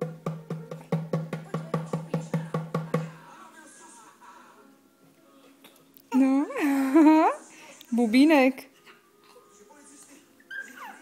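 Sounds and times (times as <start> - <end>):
baby squealing: 10.4 - 11.0.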